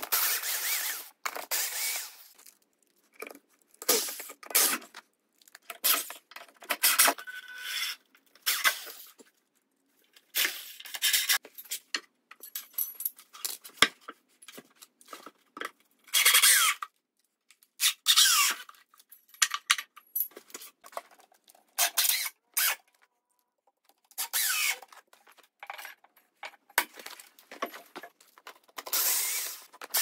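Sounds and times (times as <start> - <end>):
power drill driving screws: 0.1 - 2.3, 28.9 - 30.0.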